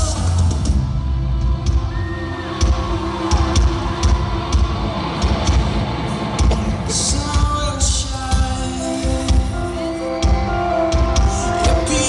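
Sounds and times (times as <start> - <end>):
drum beat with cymbal hits: 0.0 - 12.0
live rock band playing: 0.0 - 12.0.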